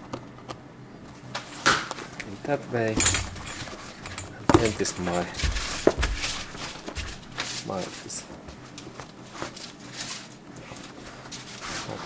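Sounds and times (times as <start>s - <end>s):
fabric cover rustling: 3.0s - 8.0s.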